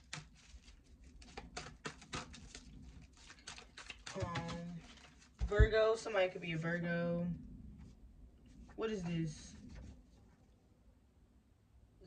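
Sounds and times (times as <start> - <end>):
cards being shuffled: 0.0 - 5.5.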